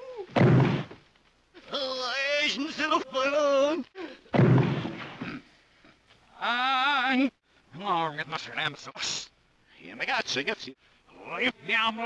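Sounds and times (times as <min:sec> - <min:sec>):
loud bang: 0:00.4 - 0:01.0, 0:04.4 - 0:05.3.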